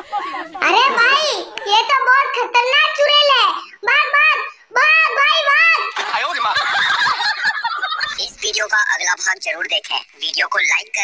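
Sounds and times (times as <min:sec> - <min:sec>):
high-pitched cartoon voices: 0:00.0 - 0:06.5, 0:08.0 - 0:11.0.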